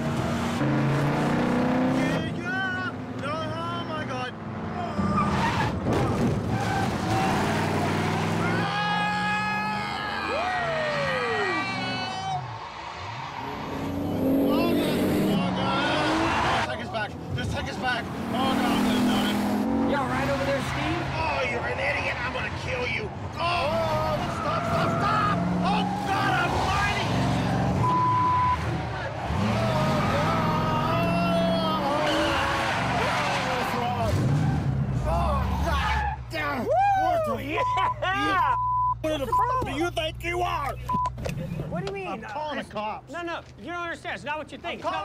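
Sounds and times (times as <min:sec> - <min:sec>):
car engine revving: 0:00.0 - 0:03.3, 0:04.3 - 0:09.0, 0:13.0 - 0:35.6
man shouting and screaming: 0:08.4 - 0:12.5, 0:29.4 - 0:33.8, 0:35.0 - 0:37.5
tyres squealing: 0:23.6 - 0:38.3.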